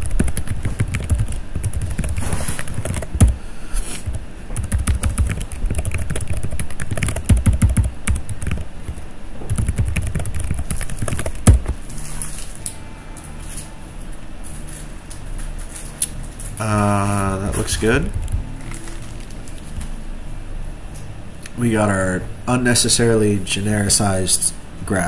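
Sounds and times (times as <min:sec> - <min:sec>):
typing on a keyboard: 0:00.0 - 0:03.4, 0:04.1 - 0:08.7, 0:09.5 - 0:11.6.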